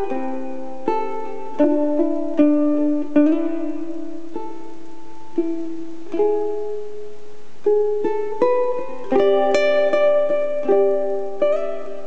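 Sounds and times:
ukulele fingerpicking: 0.0s - 12.0s.

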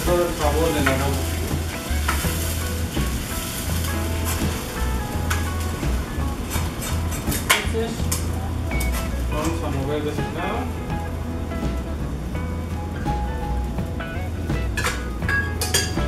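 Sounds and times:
background music: 0.0s - 16.0s
sauce sizzling in clay pot: 0.0s - 16.0s.

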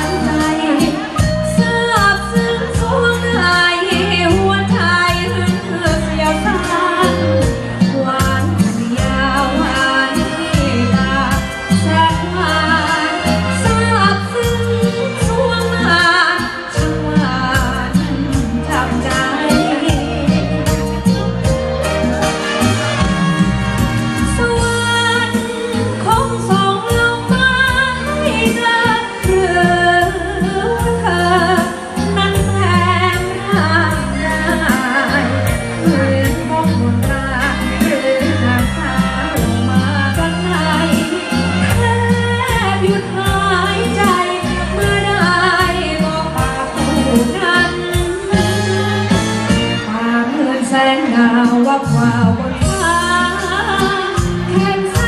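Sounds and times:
backing music with bass beat: 0.0s - 49.9s
person singing into microphone: 0.0s - 55.0s.

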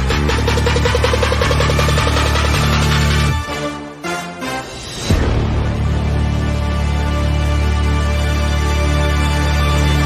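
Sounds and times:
electronic music: 0.0s - 4.7s.

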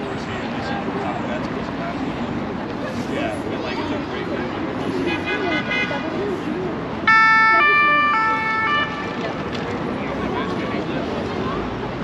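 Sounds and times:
two-tone emergency siren: 7.1s - 9.0s.

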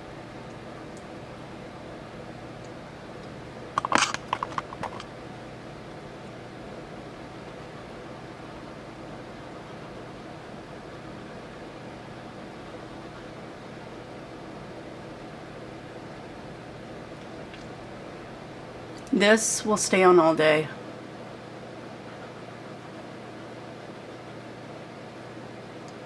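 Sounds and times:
room hum and hiss: 0.0s - 26.0s.

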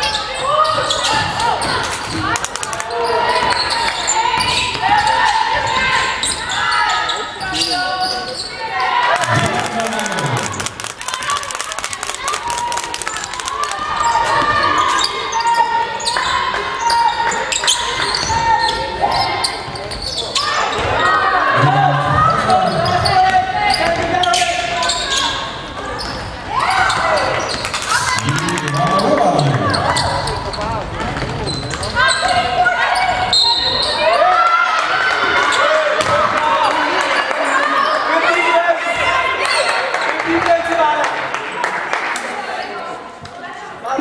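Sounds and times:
people calling out: 2.2s - 17.1s, 26.5s - 30.5s.

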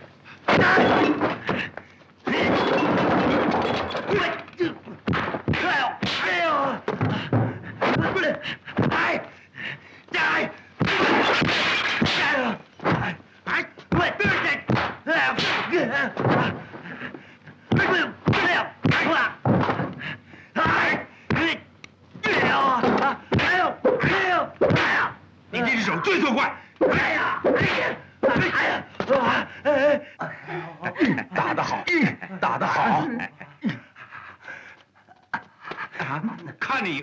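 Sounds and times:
fighters shouting and grunting: 0.4s - 2.8s, 4.0s - 21.6s, 22.2s - 33.8s
smashing crash: 2.3s - 4.3s.

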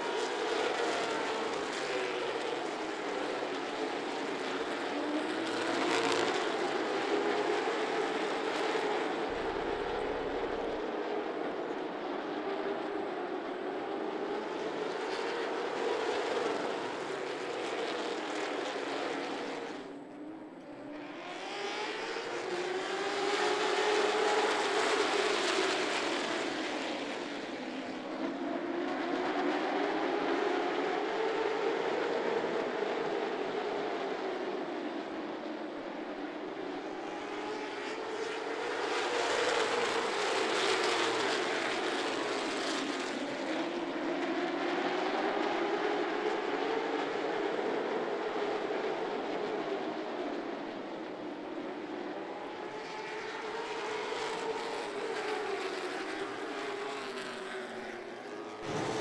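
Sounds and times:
race car engines droning: 0.0s - 59.0s.

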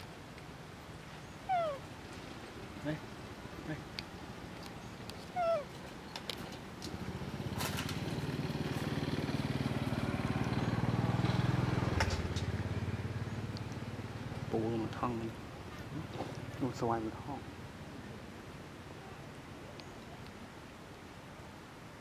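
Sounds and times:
motorcycle engine passing by: 6.9s - 15.1s.

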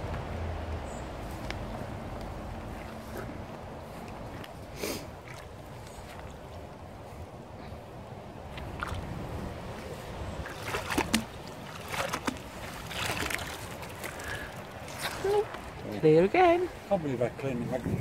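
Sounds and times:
sharp splashes and drips: 0.0s - 6.9s, 8.4s - 17.8s
magnet sloshing through water: 2.7s - 6.8s, 8.5s - 15.8s.

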